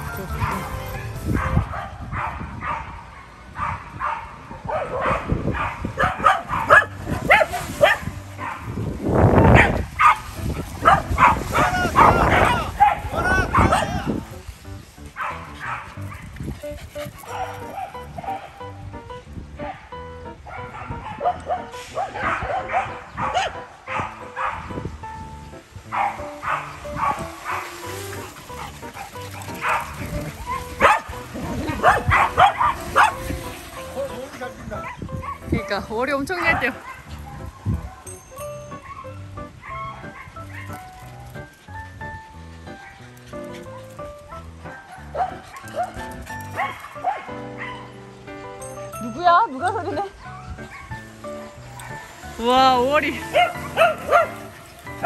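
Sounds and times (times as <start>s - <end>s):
dogs barking and yipping: 0.0s - 55.0s.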